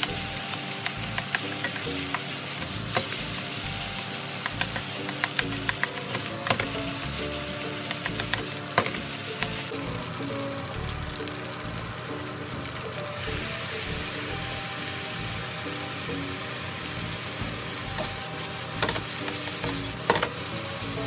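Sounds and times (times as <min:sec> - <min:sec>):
rice sizzling in a frying pan: 0:00.0 - 0:21.0.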